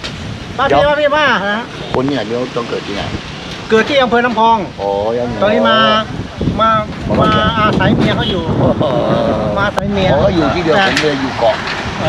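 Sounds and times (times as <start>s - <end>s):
outdoor background noise: 0.0s - 12.0s
man speaking: 0.6s - 11.6s.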